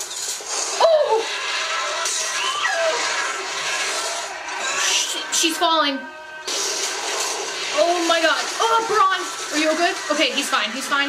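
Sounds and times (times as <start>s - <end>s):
dense battle noise: 0.4s - 11.0s.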